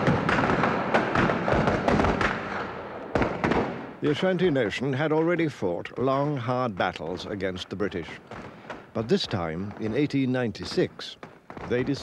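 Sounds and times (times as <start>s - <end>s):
rifle gunfire with echoes: 0.0s - 4.4s, 8.1s - 12.0s.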